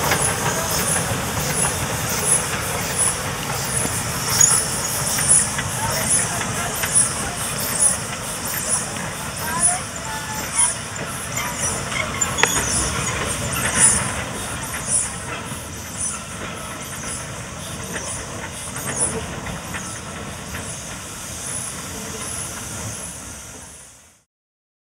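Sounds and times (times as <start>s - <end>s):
steam hissing: 0.0s - 24.2s
train rumble: 0.0s - 24.2s.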